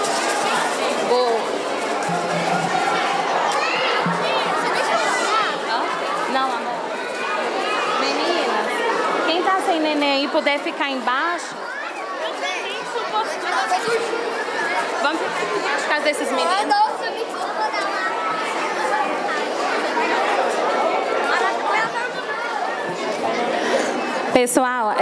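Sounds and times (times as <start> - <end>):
crowd chattering in a hall: 0.0 - 25.0
woman speaking: 24.4 - 25.0.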